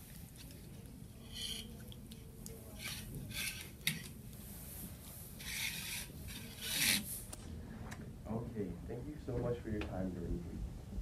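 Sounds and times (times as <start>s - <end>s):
plastic cups scraping on tabletop: 2.7s - 4.2s, 5.4s - 7.2s.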